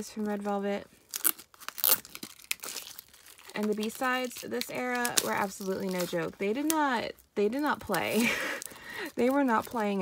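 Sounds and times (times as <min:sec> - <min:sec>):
plastic wrap tearing and crinkling: 0:00.0 - 0:10.0.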